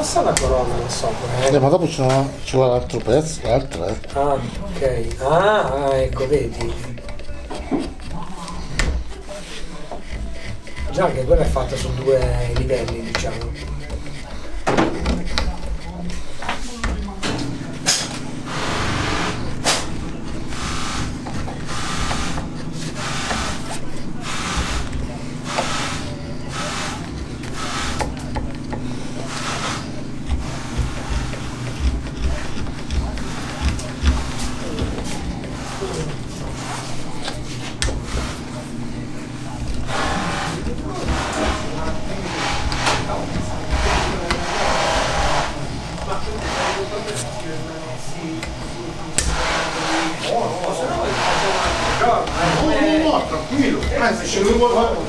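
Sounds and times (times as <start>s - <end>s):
carving tool scraping wood: 0.0s - 55.0s
steady machine hum: 0.0s - 55.0s.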